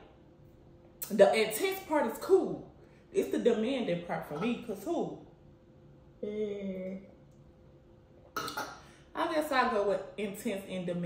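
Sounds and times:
person gulping: 8.2 - 8.8.

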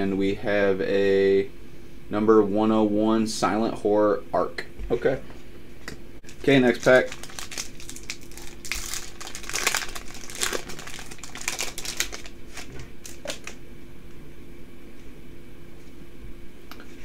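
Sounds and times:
faint steady hum: 0.0 - 17.0
foil wrapper crinkling: 6.2 - 13.6.

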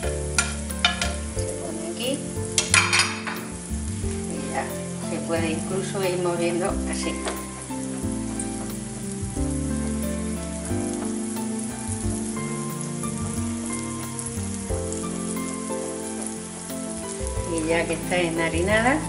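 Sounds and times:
background music low notes: 0.0 - 19.0
food sizzling in hot oil: 0.0 - 19.0.

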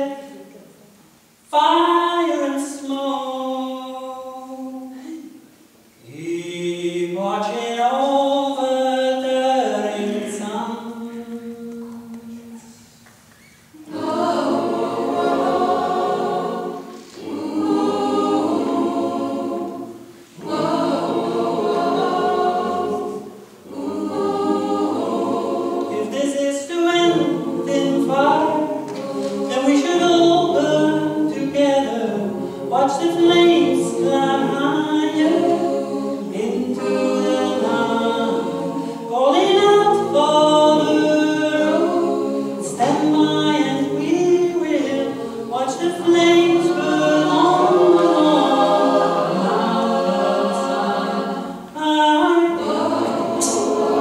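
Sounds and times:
mixed choir singing a cappella: 0.0 - 0.8, 1.5 - 12.9, 13.7 - 54.0.

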